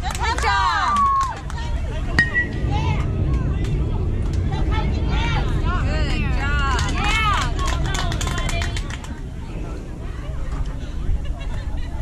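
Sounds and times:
spectators shouting and cheering: 0:00.0 - 0:08.8
wind rumble on microphone: 0:00.0 - 0:12.0
bat hitting ball ping: 0:02.2 - 0:02.6.

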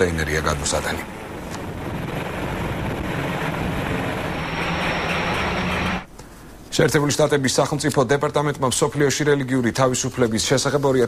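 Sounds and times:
steady engine hum: 0:00.2 - 0:06.2.

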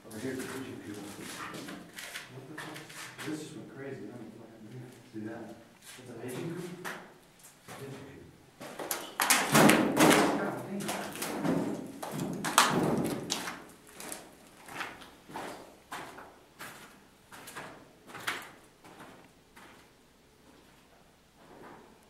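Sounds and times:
knocks and thumps: 0:09.2 - 0:13.5.

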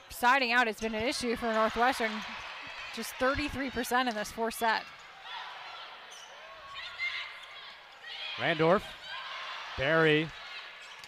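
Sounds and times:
crowd noise: 0:00.0 - 0:11.0
shoes squeaking on court: 0:06.0 - 0:07.9.

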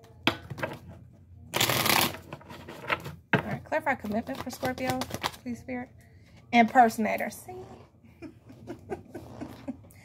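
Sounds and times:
cards being shuffled: 0:04.0 - 0:05.4.

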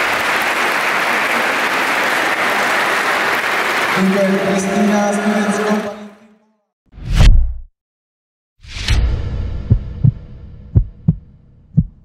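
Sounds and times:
heartbeat thumps: 0:09.6 - 0:12.0.

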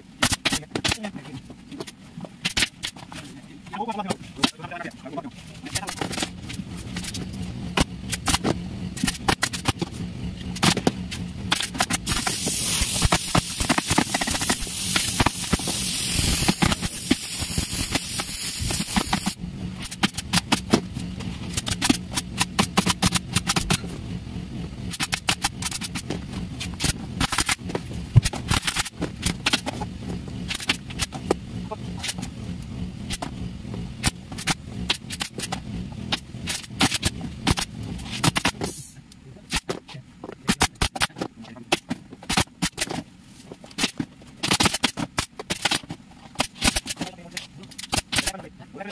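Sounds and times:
steady low hum: 0:00.0 - 0:48.9
air hissing: 0:11.6 - 0:20.6.

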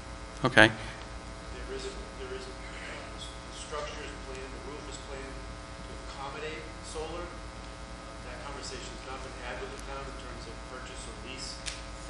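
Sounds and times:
electrical mains hum: 0:00.0 - 0:12.0
faint talk in the room: 0:00.4 - 0:11.8.

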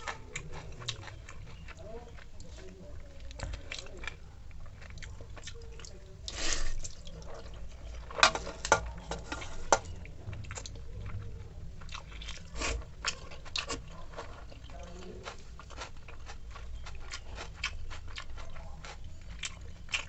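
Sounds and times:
person chewing wet food: 0:00.0 - 0:20.0.

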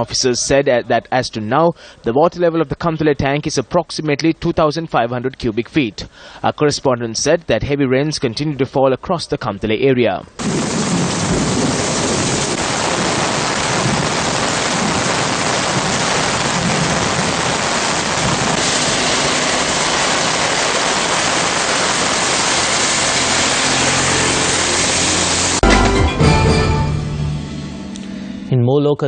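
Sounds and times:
heavy rain on road: 0:10.4 - 0:25.6
broadcast transition sting: 0:18.5 - 0:28.5.

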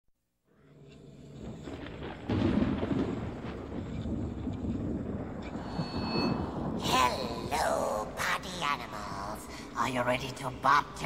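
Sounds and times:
deep rolling rumble: 0:01.0 - 0:09.3.

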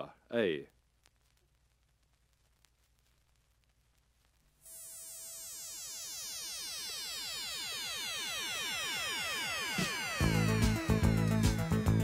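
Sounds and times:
buzzy synthesizer tone: 0:04.7 - 0:12.0.

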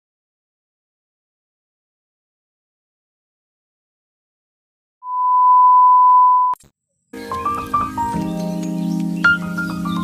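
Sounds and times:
steady electronic beep: 0:05.0 - 0:06.6.

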